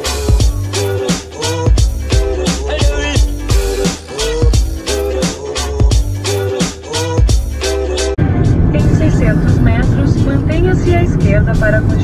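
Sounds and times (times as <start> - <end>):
road and engine rumble in car: 8.2 - 12.0.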